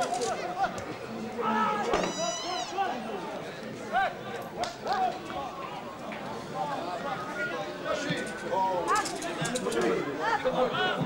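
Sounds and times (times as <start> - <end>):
background hubbub: 0.0 - 11.0
people shouting calls: 1.4 - 3.2.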